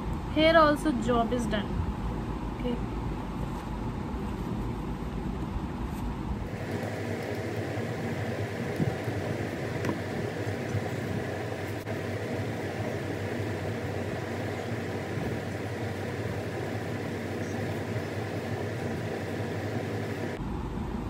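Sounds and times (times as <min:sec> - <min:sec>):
steady fan noise: 0:00.0 - 0:21.0.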